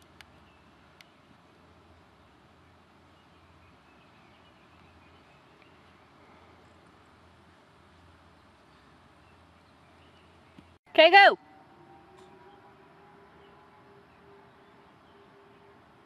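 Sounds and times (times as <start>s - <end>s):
outdoor background hiss: 0.0s - 16.0s.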